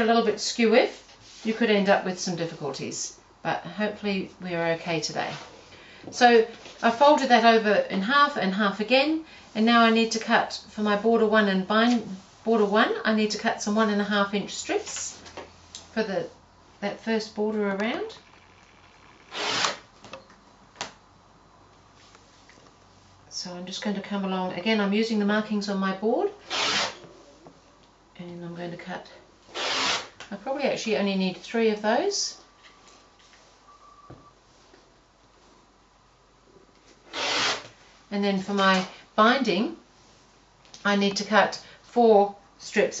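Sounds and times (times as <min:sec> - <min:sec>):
rotary cutter slicing fabric: 0:19.2 - 0:19.8, 0:26.5 - 0:27.0, 0:29.5 - 0:30.2, 0:37.1 - 0:37.7.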